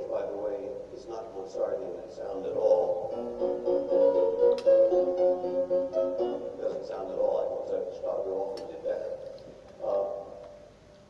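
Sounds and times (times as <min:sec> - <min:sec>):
instrumental music held notes: 0:02.4 - 0:09.2.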